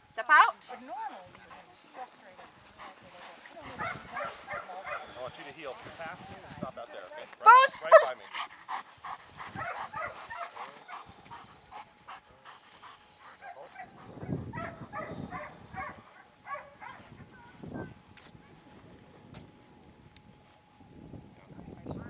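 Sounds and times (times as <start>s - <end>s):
dog barking: 3.7s - 5.2s, 9.5s - 11.4s, 13.3s - 17.6s.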